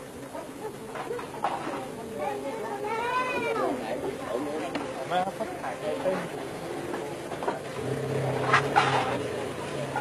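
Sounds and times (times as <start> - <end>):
people's voices: 0.0 - 10.0.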